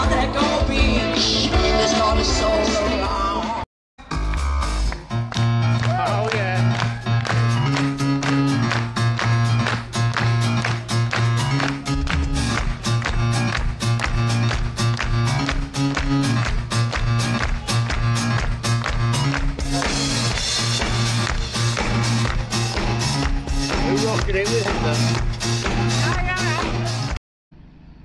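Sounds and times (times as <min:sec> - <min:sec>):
live band playing soul-pop: 0:00.0 - 0:03.6, 0:04.2 - 0:27.2
bass line: 0:00.0 - 0:27.2
steady drumbeat: 0:04.1 - 0:27.2.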